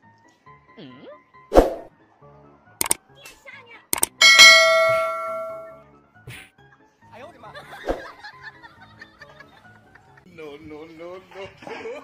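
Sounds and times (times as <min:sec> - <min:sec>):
short sharp click: 0:04.0 - 0:04.2
bell ringing: 0:04.0 - 0:05.8.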